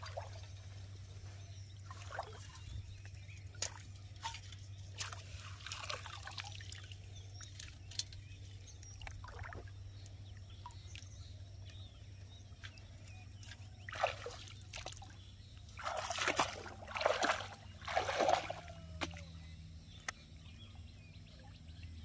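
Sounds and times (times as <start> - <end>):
shallow water trickling and splashing: 0.0 - 19.4.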